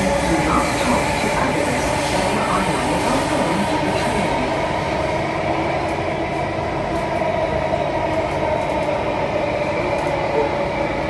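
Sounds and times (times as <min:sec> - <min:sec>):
metro train running inside car: 0:00.0 - 0:11.0.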